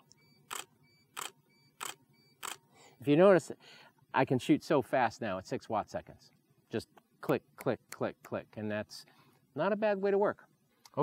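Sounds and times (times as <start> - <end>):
camera shutter firing: 0.5 - 2.6.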